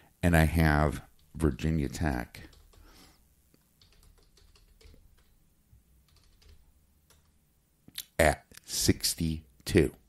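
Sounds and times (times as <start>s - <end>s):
faint keyboard typing: 1.0s - 7.4s.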